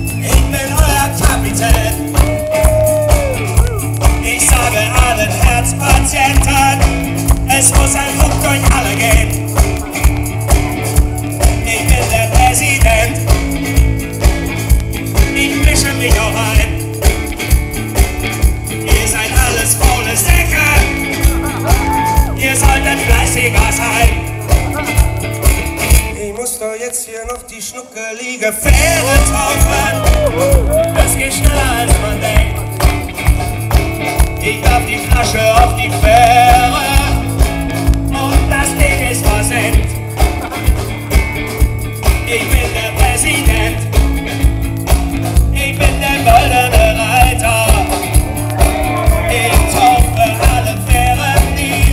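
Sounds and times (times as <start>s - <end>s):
man singing into microphone: 0.0s - 9.5s, 11.5s - 13.3s, 15.2s - 16.9s, 18.8s - 25.0s, 26.0s - 32.8s, 34.4s - 40.0s, 42.2s - 44.0s, 45.5s - 51.9s
rock band playing: 0.0s - 26.4s, 28.6s - 51.9s
drum kit: 0.0s - 26.6s, 28.6s - 51.9s
electric guitar: 0.0s - 27.5s, 28.6s - 51.9s.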